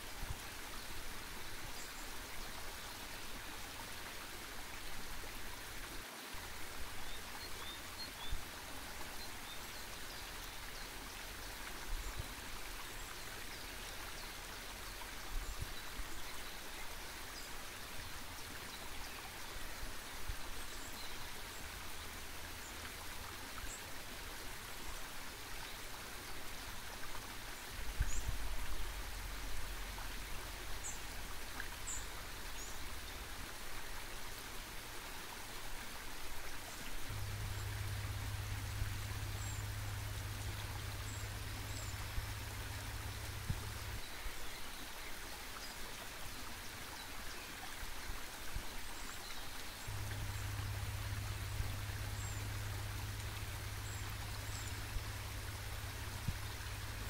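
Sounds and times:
stream rushing over rocks: 0.0 - 57.0
low rumble: 37.1 - 44.1, 49.9 - 57.0.

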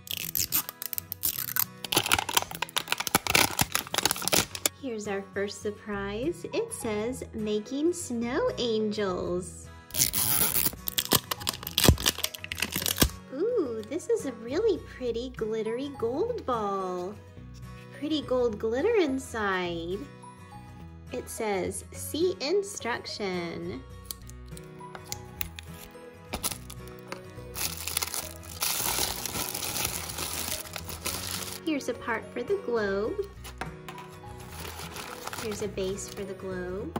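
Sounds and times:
plastic packaging crinkling: 0.0 - 4.7, 9.9 - 13.2, 25.1 - 31.7, 34.3 - 36.2
background music: 0.0 - 36.9.

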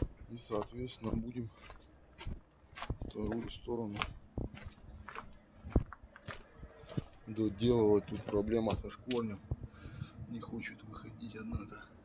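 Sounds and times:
footsteps on gravel: 0.0 - 9.7.

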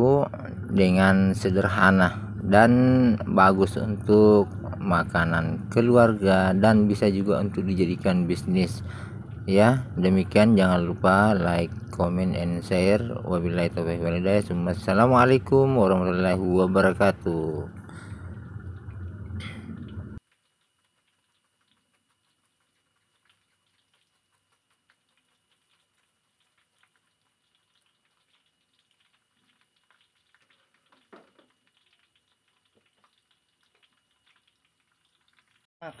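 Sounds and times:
banana slices frying in oil: 0.0 - 35.7.

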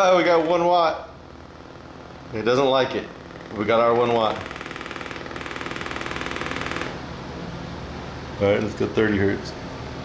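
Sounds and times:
small speaker buzzing with distortion: 0.0 - 7.2.

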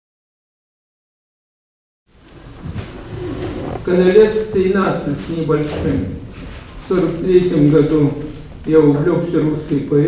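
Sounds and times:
low room rumble: 2.1 - 10.0
man speaking into a microphone: 3.7 - 10.0.

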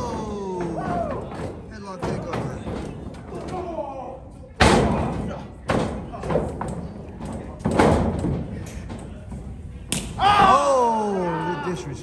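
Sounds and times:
crowd voices: 0.0 - 7.8.

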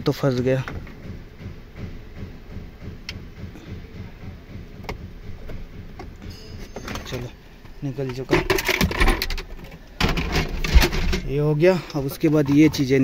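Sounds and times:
plastic parts rattling and knocking: 4.8 - 13.0.

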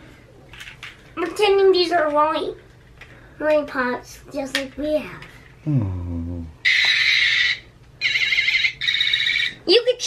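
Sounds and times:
warbling electronic toy alarm tone: 6.7 - 9.6.

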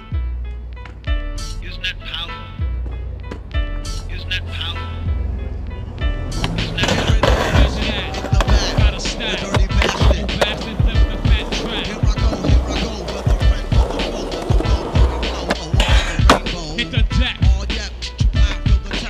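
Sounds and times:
music: 0.0 - 19.0
skateboard wheels rolling on concrete: 2.6 - 4.1, 5.1 - 19.0
skateboard pops and landings: 6.4 - 16.6.

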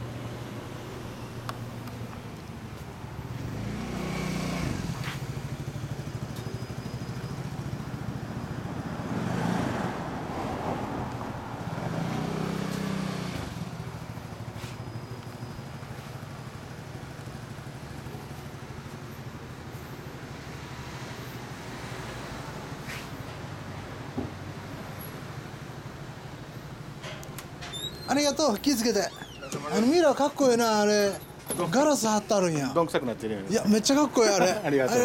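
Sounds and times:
motorcycle engine idling and revving: 0.0 - 10.3, 10.9 - 27.0.

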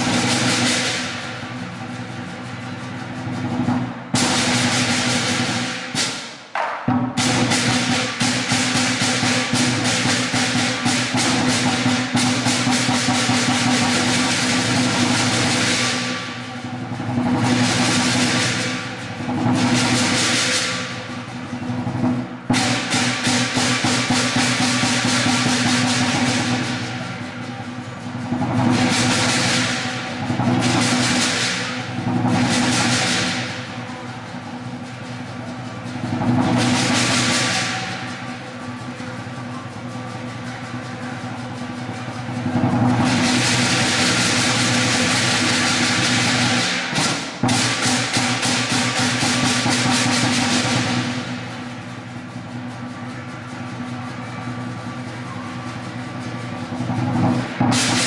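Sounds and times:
clashing cymbals: 0.0 - 58.0
lion drum rolls: 0.0 - 58.0.

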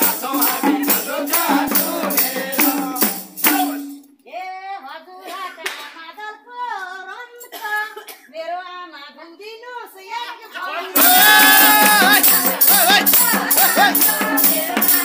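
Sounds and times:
group singing: 0.0 - 4.0, 10.6 - 15.0
hand drums: 0.0 - 4.0, 11.0 - 15.0
handclaps: 5.6 - 6.0
person singing alone: 10.9 - 15.0.

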